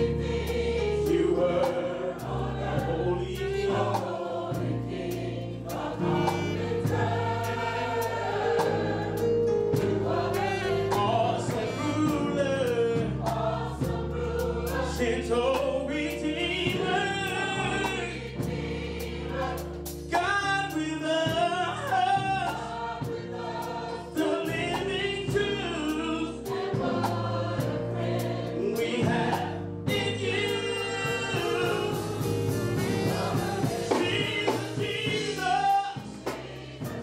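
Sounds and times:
choir singing: 0.0 - 37.0
keyboard chords: 0.0 - 37.0
steady beat of sharp strikes: 30.9 - 37.0.

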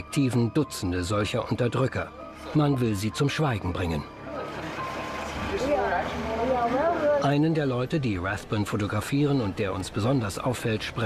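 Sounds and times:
traffic noise: 4.1 - 11.0
people talking: 5.5 - 11.0.

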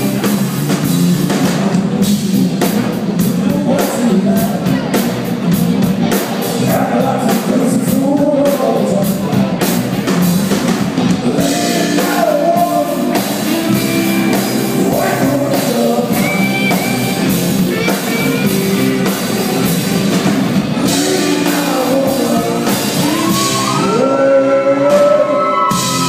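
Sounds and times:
live blues-rock band: 0.0 - 26.0.

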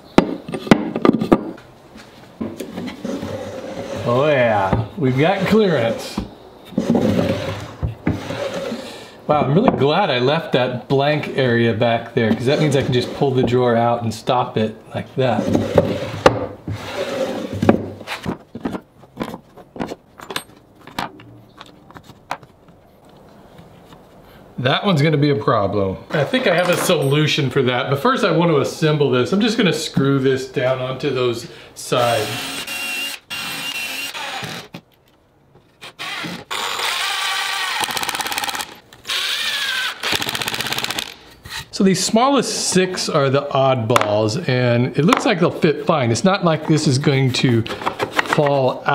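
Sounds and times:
impact driver hammering screws: 35.8 - 41.2.

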